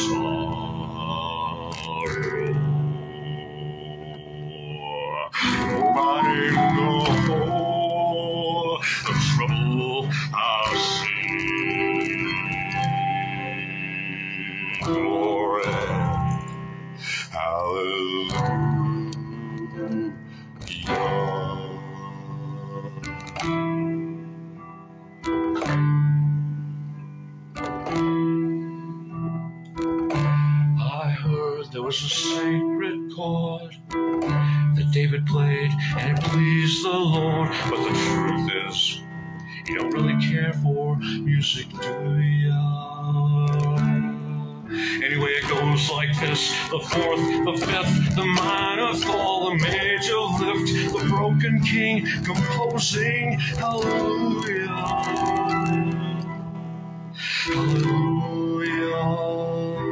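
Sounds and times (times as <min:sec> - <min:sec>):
man singing wordless notes: 0:00.0 - 0:27.0, 0:27.6 - 0:59.9
guitar strumming chords: 0:00.0 - 0:59.9.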